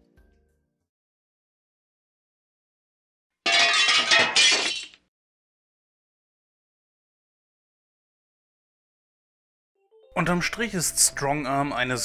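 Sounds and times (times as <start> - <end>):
glass shattering: 3.5 - 5.0.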